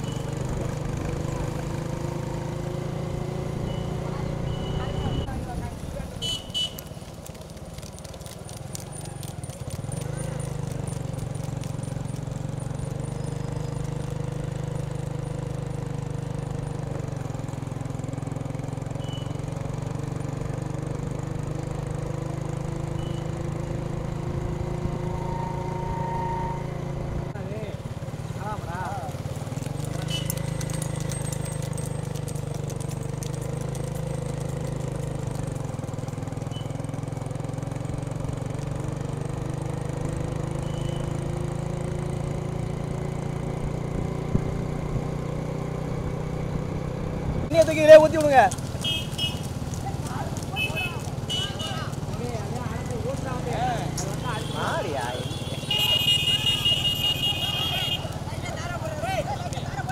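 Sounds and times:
motorcycle engines running: 0:00.0 - 0:59.9
voices: 0:03.6 - 0:11.2, 0:47.5 - 0:59.9.

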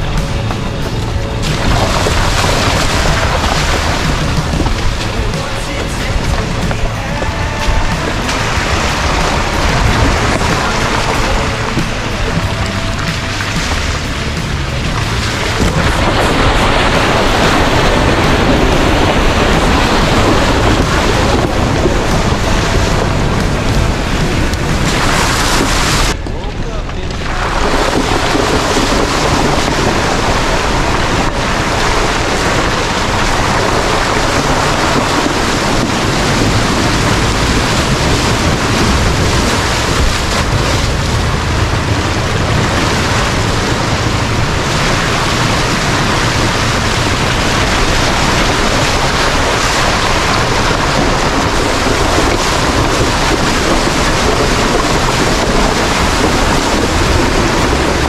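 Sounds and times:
water sloshing and splashing: 0:00.0 - 0:26.2, 0:27.5 - 0:58.0
wind and road noise: 0:00.0 - 0:58.0.

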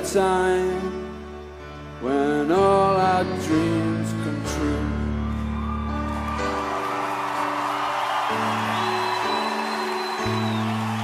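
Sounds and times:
crowd cheering: 0:04.8 - 0:11.0
high whistle: 0:07.8 - 0:11.0.

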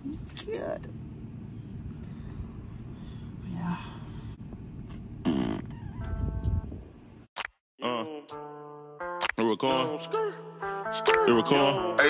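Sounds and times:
silly mouth noise: 0:05.2 - 0:06.2.

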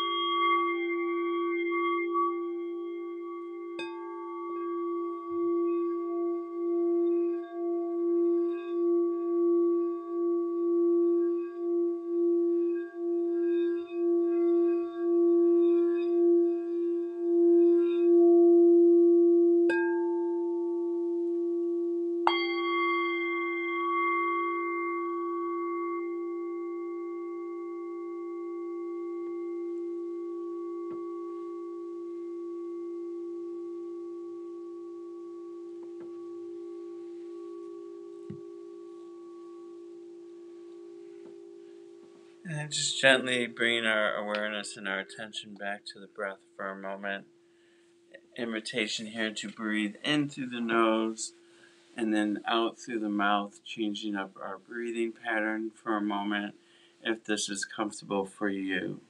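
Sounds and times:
metal singing bowl struck: 0:00.0 - 0:21.5, 0:22.2 - 0:44.7
crystal singing bowl low tone: 0:00.0 - 0:57.0.

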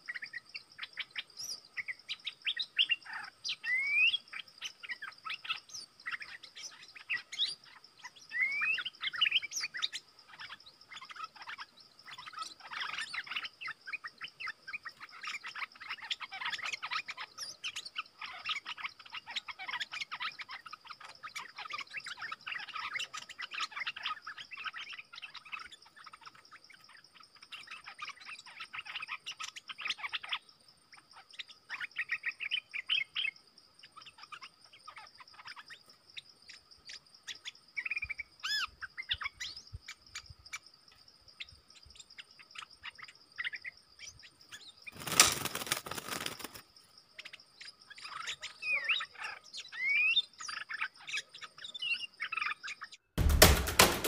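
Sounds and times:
birds chirping and warbling: 0:00.0 - 0:53.2
high insect drone: 0:44.9 - 0:47.3.

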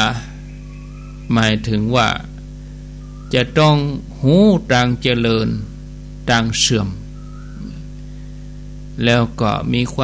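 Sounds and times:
man's voice: 0:00.0 - 0:00.4, 0:01.3 - 0:02.4, 0:09.0 - 0:10.0
low electrical mains hum: 0:00.0 - 0:10.0.

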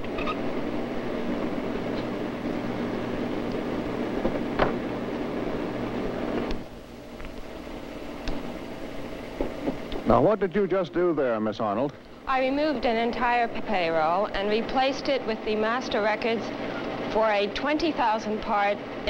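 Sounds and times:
disk drive machinery humming: 0:00.0 - 0:19.0.

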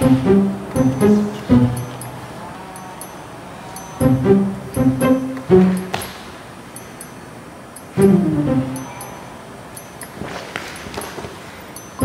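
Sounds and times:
background music: 0:00.0 - 0:03.2, 0:03.8 - 0:06.3, 0:07.9 - 0:09.2
tiny high ticks: 0:00.8 - 0:04.1.

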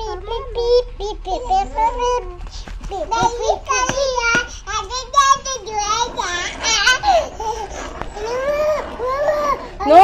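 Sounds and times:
toddler laughing: 0:02.4 - 0:09.8
children chattering: 0:02.4 - 0:10.0.

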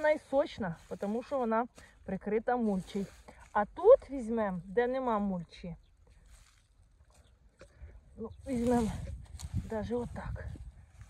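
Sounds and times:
hand digging in straw and soil: 0:00.0 - 0:05.2, 0:08.4 - 0:11.0.

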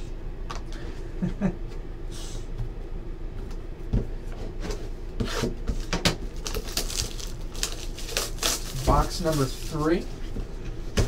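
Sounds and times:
low room hum: 0:00.0 - 0:11.0
card box rustling: 0:06.4 - 0:10.2.

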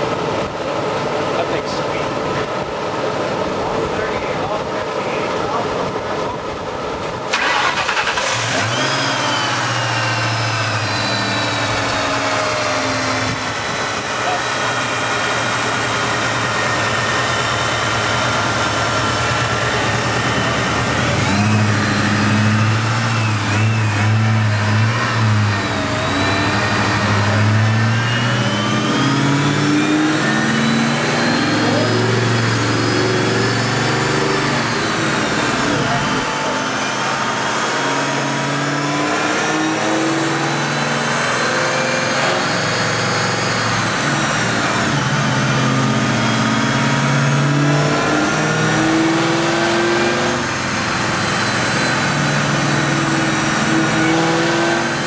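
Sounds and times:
car engine starting and revving: 0:07.0 - 0:55.0.

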